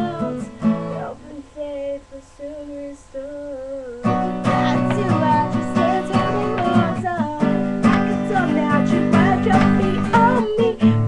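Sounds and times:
young woman singing: 0.0 - 11.0.

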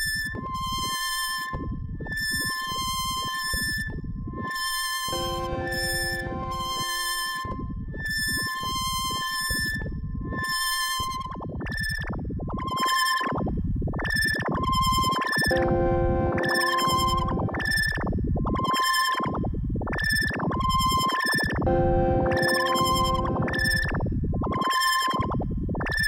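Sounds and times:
synthesizer held chord: 5.1 - 7.5, 15.5 - 17.6, 21.7 - 23.9
synthesizer pulsing beeps: 5.1 - 7.6, 15.4 - 18.0, 21.7 - 24.7.

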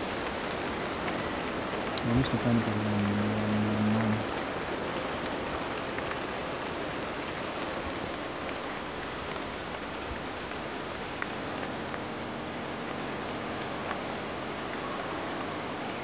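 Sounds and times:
rain falling on foliage: 0.0 - 16.0.

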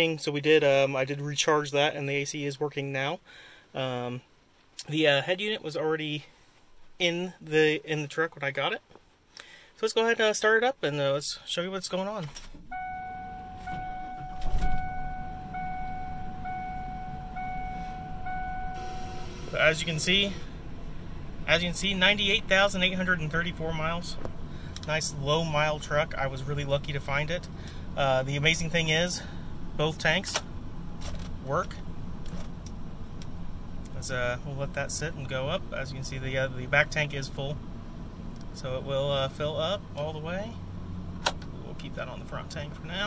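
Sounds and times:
truck engine starting and idling: 12.5 - 43.0
dashboard warning chime: 12.7 - 20.4.

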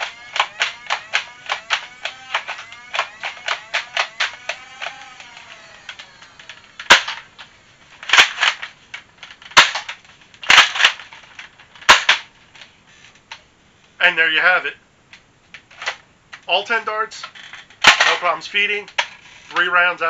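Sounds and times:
toy blaster firing darts: 0.0 - 7.3, 9.5 - 9.9.

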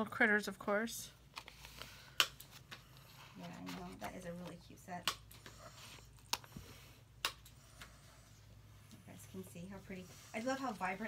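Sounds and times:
paper sticker sheets rustling: 1.3 - 5.0.

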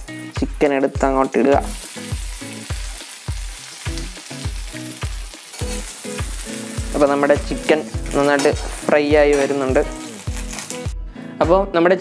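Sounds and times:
chicken sizzling in a hot pan: 1.6 - 10.9
metal spatula stirring: 6.8 - 10.8.

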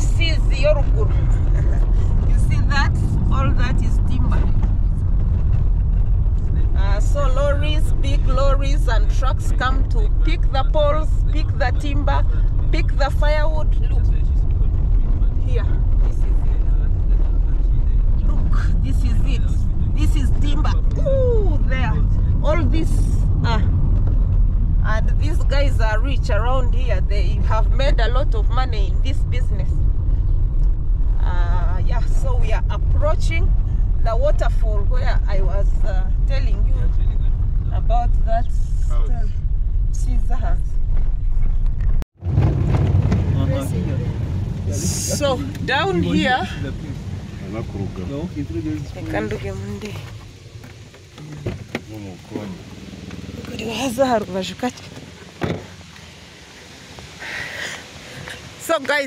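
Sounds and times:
people talking: 0.0 - 4.7, 6.5 - 23.7, 24.8 - 29.7, 31.2 - 39.4, 40.0 - 40.7, 43.1 - 50.1, 51.2 - 52.7, 53.4 - 55.6, 57.4 - 59.0
car engine and tyre rumble: 0.0 - 59.0.

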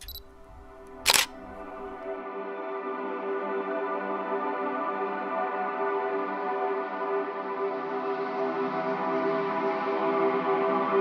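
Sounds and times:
camera shutter click: 0.0 - 1.9
ambient music pad: 0.0 - 11.0.

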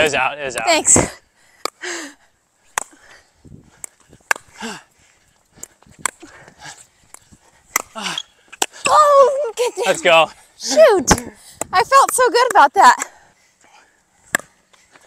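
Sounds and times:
person crying out: 8.8 - 9.8.

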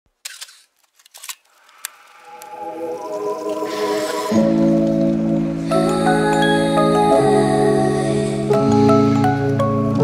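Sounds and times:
sharp clicks and crackles: 0.2 - 2.6.

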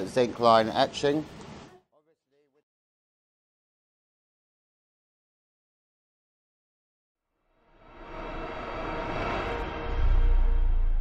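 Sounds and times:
whoosh: 7.5 - 11.0.

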